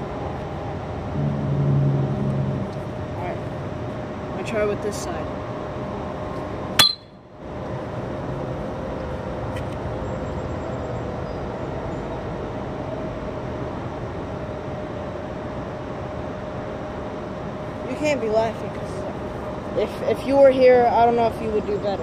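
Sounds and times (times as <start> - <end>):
outdoor background rumble: 0.0 - 22.0.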